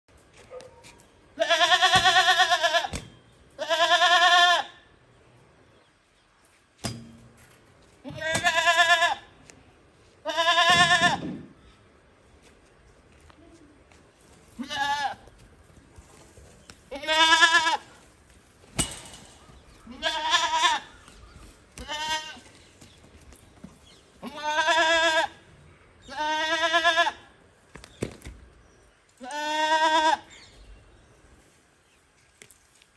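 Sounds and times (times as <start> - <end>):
goat bleating: 1.4 - 3.0, 3.6 - 4.8, 8.1 - 9.3, 10.2 - 11.2, 14.6 - 15.3, 16.9 - 18.0, 19.9 - 20.9, 21.8 - 22.5, 24.2 - 25.4, 26.0 - 27.3, 29.2 - 30.3.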